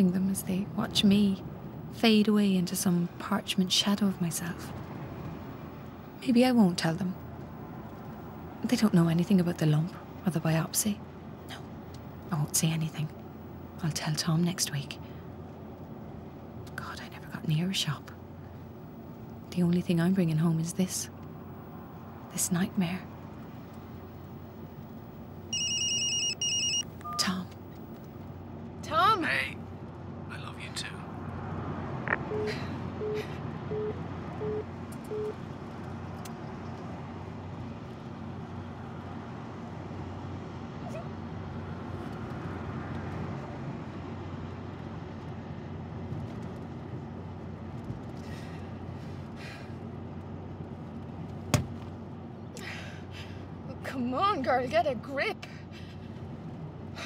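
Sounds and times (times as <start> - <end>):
telephone ringing electronically: 25.5 - 27.4.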